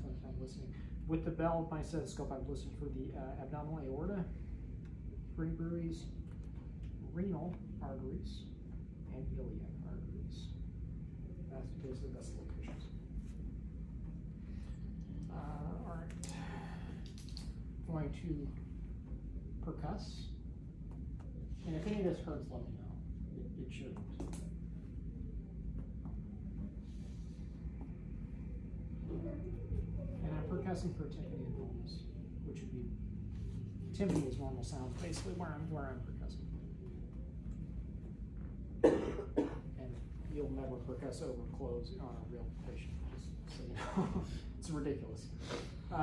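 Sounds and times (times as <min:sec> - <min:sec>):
man talking: 0:00.0 - 0:04.4, 0:05.3 - 0:06.2, 0:07.0 - 0:10.6, 0:11.4 - 0:13.1, 0:15.2 - 0:17.0, 0:17.8 - 0:18.7, 0:19.6 - 0:20.4, 0:21.6 - 0:24.4, 0:30.2 - 0:33.1, 0:33.9 - 0:36.6, 0:39.6 - 0:46.0
low room hum: 0:00.0 - 0:46.0
person coughing: 0:38.8 - 0:39.7.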